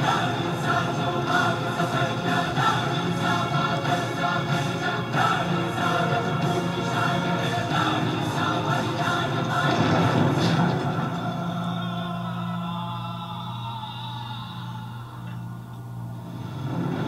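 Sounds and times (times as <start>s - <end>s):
sustained orchestral music: 0.0s - 13.3s
choir singing: 0.0s - 15.5s.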